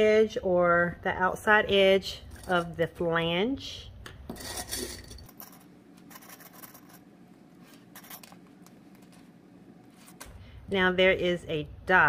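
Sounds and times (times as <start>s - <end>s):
fabric rustling on a tabletop: 7.6s - 10.3s.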